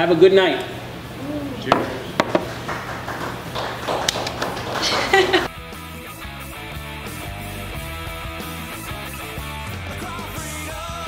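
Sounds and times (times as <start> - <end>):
glasses tapping: 1.7 - 2.7.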